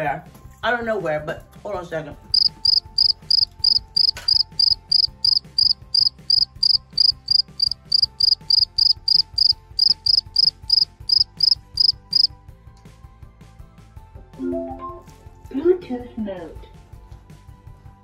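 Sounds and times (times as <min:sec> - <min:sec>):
crickets chirping: 0:02.3 - 0:12.3.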